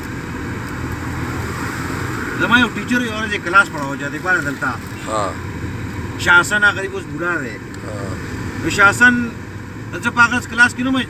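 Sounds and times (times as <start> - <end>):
car engine and road noise: 0.0 - 11.0
person talking: 5.0 - 5.4, 7.8 - 8.2.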